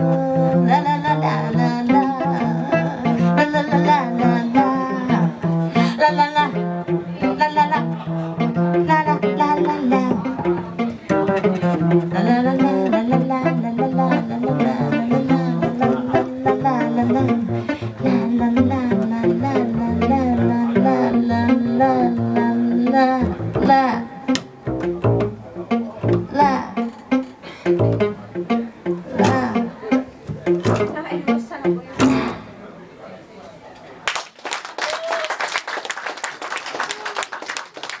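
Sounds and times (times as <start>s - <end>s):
woman singing with vibrato: 0.0s - 10.8s, 11.9s - 24.6s, 26.1s - 28.0s, 29.0s - 32.5s
electric guitar: 0.0s - 32.5s
upright double bass: 0.0s - 32.8s
audience applause: 34.0s - 38.0s.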